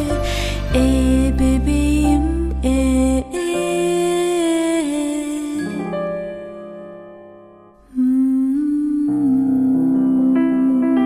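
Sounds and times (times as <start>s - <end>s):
soft sustained instrumental chords: 0.0s - 11.0s
person humming a lullaby: 8.0s - 11.0s.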